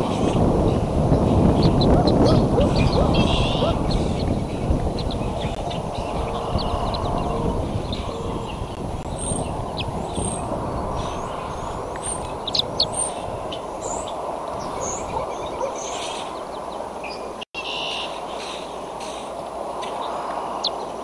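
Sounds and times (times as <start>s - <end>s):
low outdoor rumble: 0.0s - 17.4s
bird chirps: 1.5s - 20.9s.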